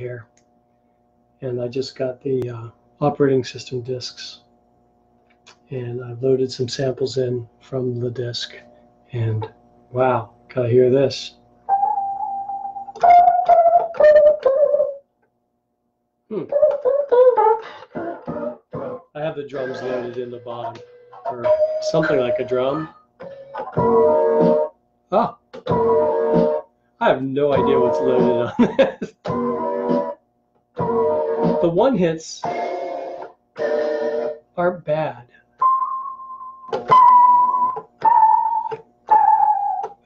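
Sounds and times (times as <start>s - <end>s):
warbling sampler keyboard notes: 11.7s - 15.0s, 16.3s - 24.7s, 25.7s - 26.6s, 27.3s - 28.5s, 29.3s - 30.2s, 30.8s - 34.4s, 36.8s - 40.0s.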